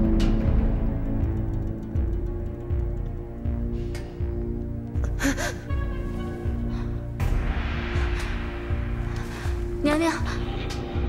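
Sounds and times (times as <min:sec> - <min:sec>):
music with low pulsing beat: 0:00.0 - 0:11.0
woman gasping: 0:05.0 - 0:05.7.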